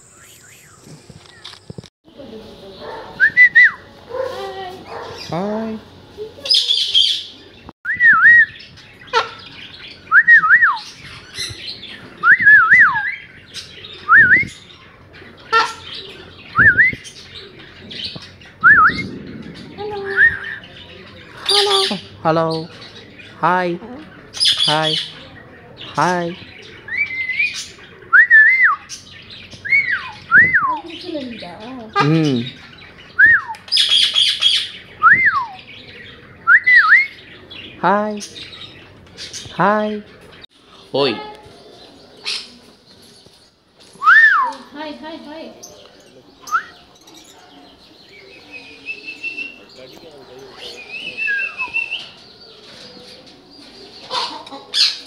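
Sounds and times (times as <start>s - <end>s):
birds whistling: 0.0s - 1.8s, 2.8s - 4.2s, 6.5s - 23.4s, 24.1s - 55.0s
bird squawk: 9.0s - 9.7s, 15.4s - 16.3s, 54.0s - 55.0s.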